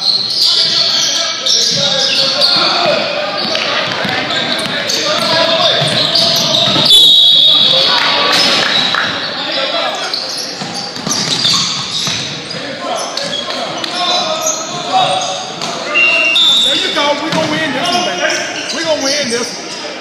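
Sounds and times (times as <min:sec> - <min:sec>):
basketball dribbling on hardwood: 0:03.9 - 0:06.1.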